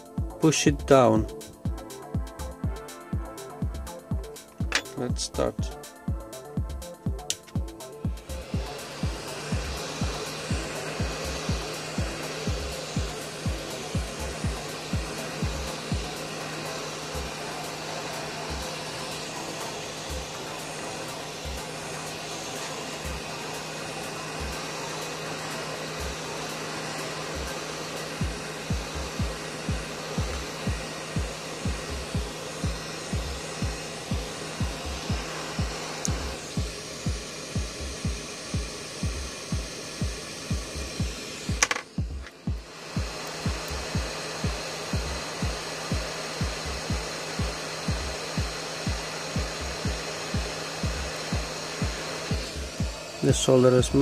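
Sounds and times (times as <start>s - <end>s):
hot air gun blowing: 0.0s - 54.0s
music with thumping beat: 0.0s - 54.0s.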